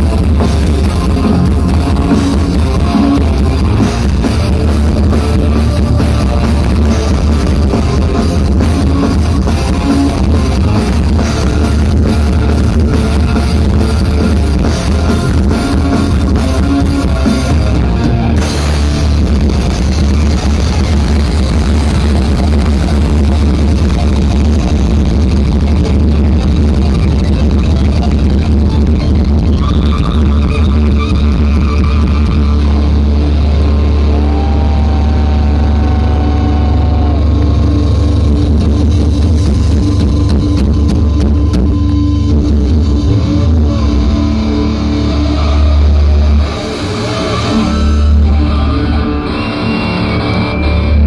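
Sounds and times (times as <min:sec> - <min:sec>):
distorted electric guitar: 0:00.0 - 0:51.0
loud bass drone: 0:00.0 - 0:51.0
rock band playing live: 0:00.0 - 0:51.0.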